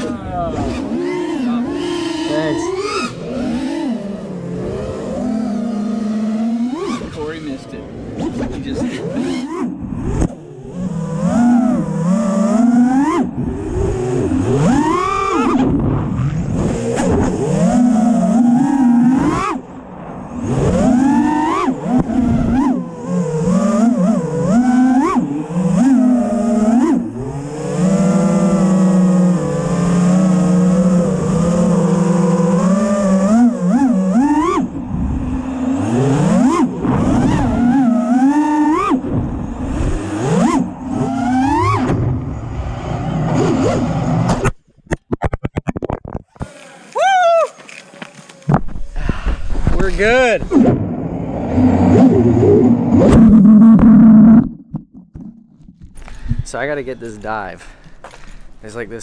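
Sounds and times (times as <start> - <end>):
drone motors whining: 0.0 - 44.6, 46.2 - 57.4.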